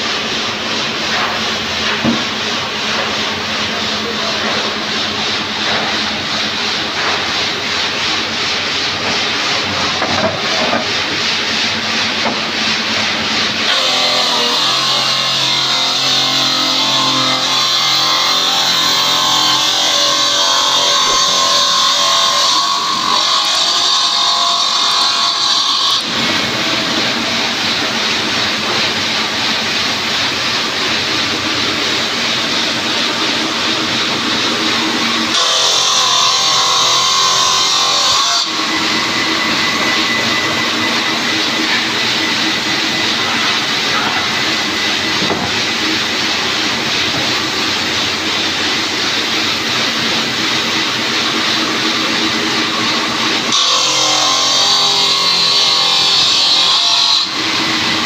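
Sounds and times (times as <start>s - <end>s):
circular saw cutting stone: 0.0s - 58.0s
workshop machine noise: 0.0s - 58.0s.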